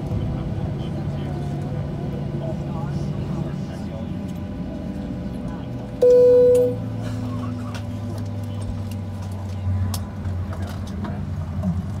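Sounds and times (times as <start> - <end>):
airplane cabin drone: 0.0 - 11.0
passengers murmuring: 0.0 - 11.8.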